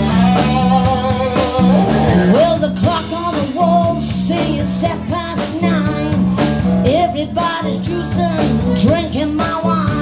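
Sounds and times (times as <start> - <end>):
electric guitar line: 0.0 - 10.0
rock and roll band playing: 0.0 - 10.0.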